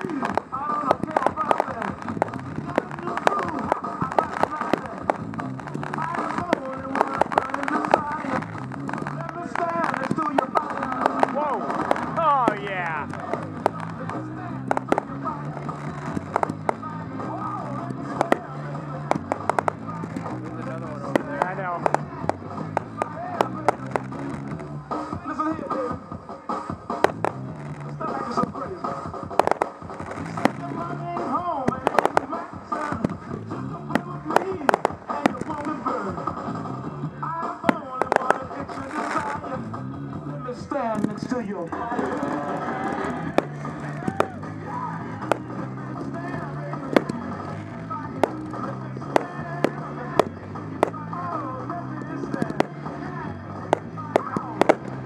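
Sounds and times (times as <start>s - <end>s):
song with singing: 0.0s - 40.9s, 41.6s - 55.0s
fireworks bursting with bangs: 0.0s - 55.0s.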